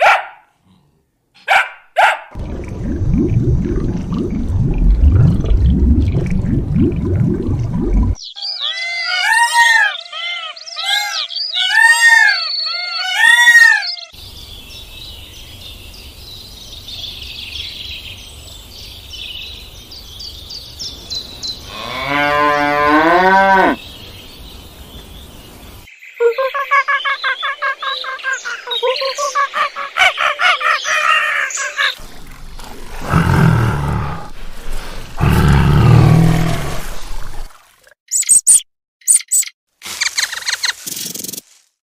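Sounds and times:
animal low rumble: 0:32.0 - 0:36.8
animal arching calls: 0:32.8 - 0:37.0.

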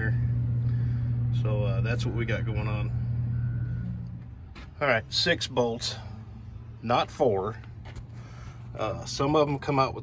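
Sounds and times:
engine idling: 0:00.0 - 0:10.0
man talking: 0:01.4 - 0:03.0, 0:08.7 - 0:10.0.

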